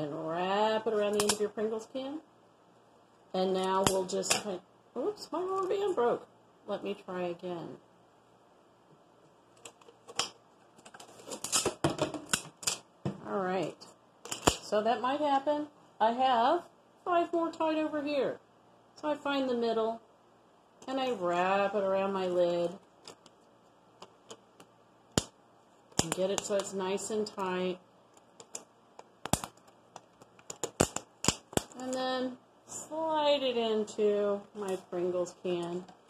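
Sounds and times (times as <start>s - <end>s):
rustling: 9.6s - 12.8s
rubber band snapping: 28.2s - 31.8s.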